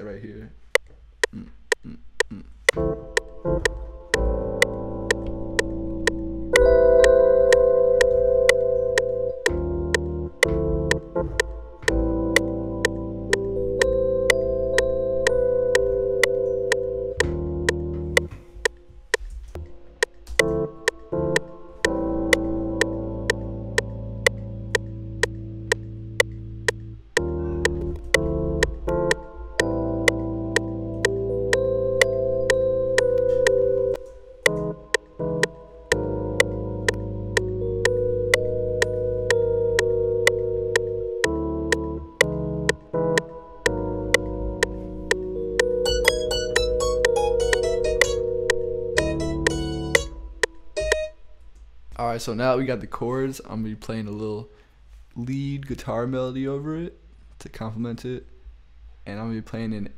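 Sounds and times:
metronome click: 1.7 - 51.2
electric piano chords: 2.6 - 51.5
quick plucked notes: 2.7 - 51.3.

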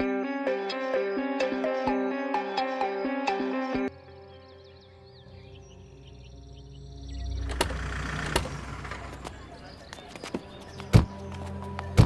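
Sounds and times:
car engine rumble: 6.8 - 10.7.

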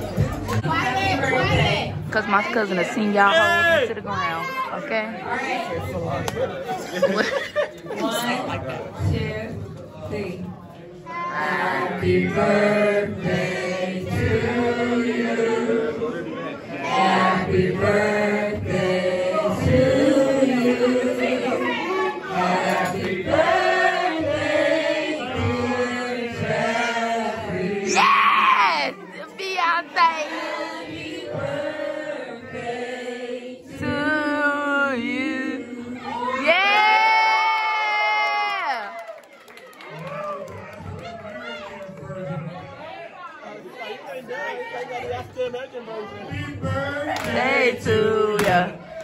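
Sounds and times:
many people talking and calling out: 0.0 - 13.2, 19.5 - 24.4, 26.3 - 31.5, 35.6 - 49.0
group of men and women singing: 8.0 - 10.5, 11.1 - 29.1, 29.8 - 36.7, 46.1 - 49.0.

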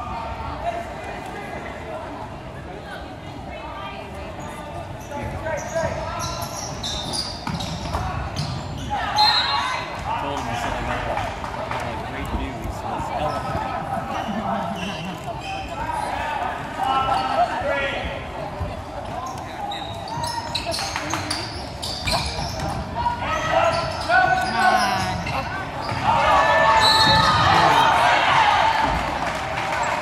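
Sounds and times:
echoing voices and shouts: 22.2 - 30.0.

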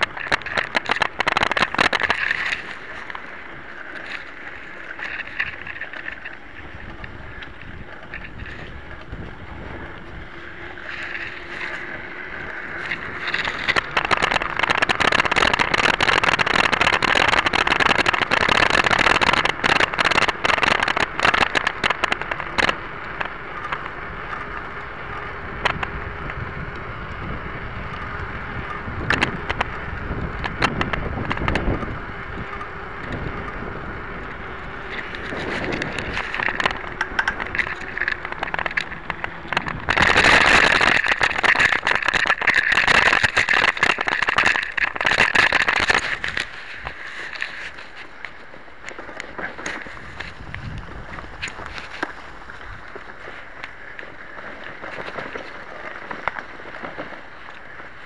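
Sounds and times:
bike frame rattling and knocking: 0.0 - 57.9.

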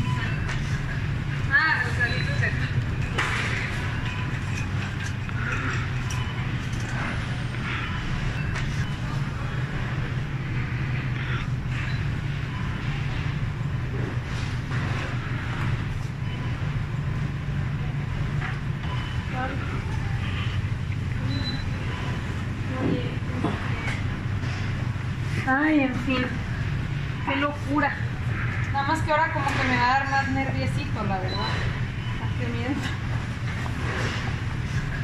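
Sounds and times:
steady low rumble: 0.0 - 35.0.

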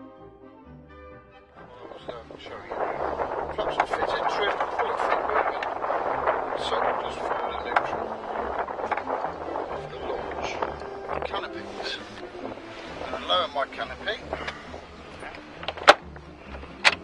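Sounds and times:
gusty wind on microphone: 1.6 - 17.0
clicks and knocks: 15.6 - 17.0.

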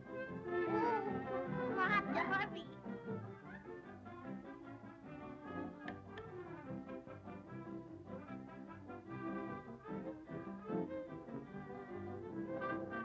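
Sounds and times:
orchestral brass music: 0.0 - 13.0.

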